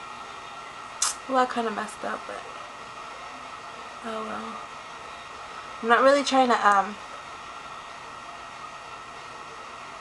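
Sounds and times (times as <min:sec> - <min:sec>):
faint high hum: 0:00.0 - 0:10.0.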